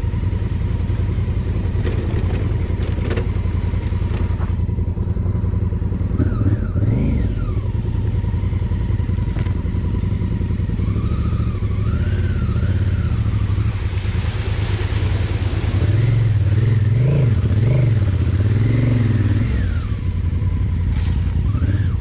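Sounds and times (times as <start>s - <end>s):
motorcycle engine running: 0.0s - 22.0s.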